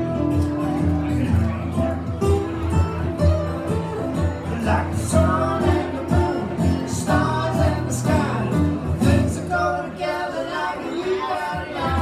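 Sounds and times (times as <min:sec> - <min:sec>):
acoustic guitars strummed: 0:00.0 - 0:12.0
person singing: 0:04.5 - 0:12.0.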